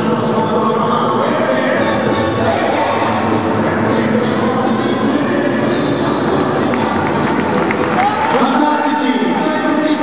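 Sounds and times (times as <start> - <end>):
ballroom dance music: 0.0 - 10.0
crowd noise roar: 0.0 - 10.0.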